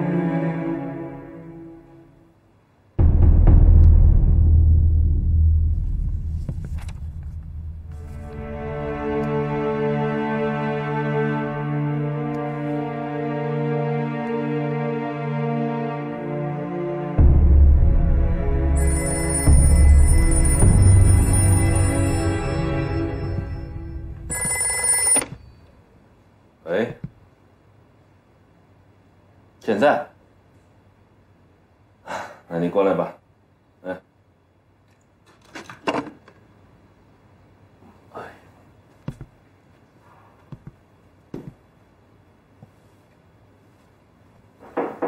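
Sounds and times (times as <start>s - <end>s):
deep bass boom: 3.0s - 8.8s, 17.2s - 18.8s
telephone bell ringing: 18.8s - 25.7s.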